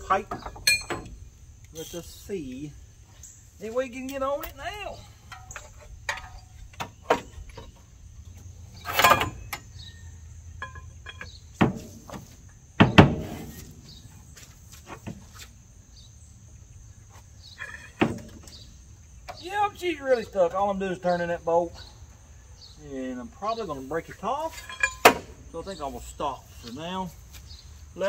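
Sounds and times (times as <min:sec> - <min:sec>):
insect chirping: 0:00.0 - 0:28.0
sharp metal knocks: 0:00.1 - 0:01.2, 0:08.8 - 0:09.8, 0:24.5 - 0:25.4.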